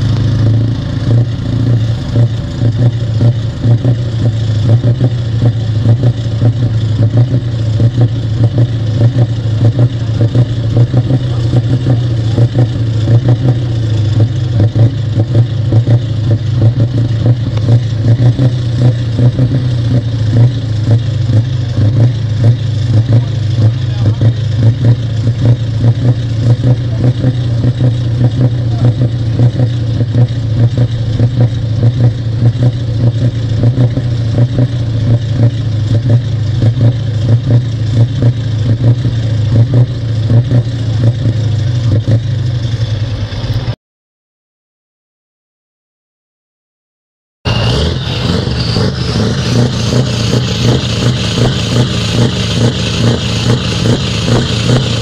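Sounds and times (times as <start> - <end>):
diesel truck engine running: 0.0 - 43.8, 47.4 - 55.0.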